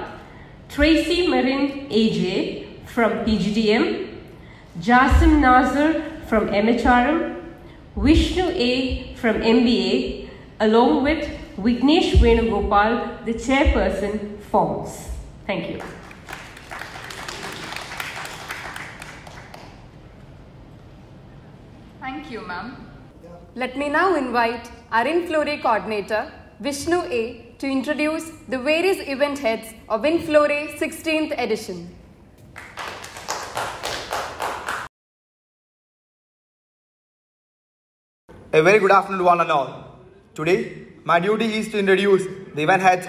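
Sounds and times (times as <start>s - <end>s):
audience applauding: 15.8s - 20.0s, 32.6s - 34.9s.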